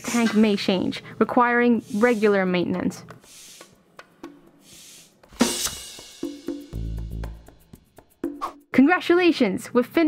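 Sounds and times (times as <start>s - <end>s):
bicycle pump air hisses: 1.8s - 2.4s, 3.2s - 3.8s, 4.5s - 6.0s.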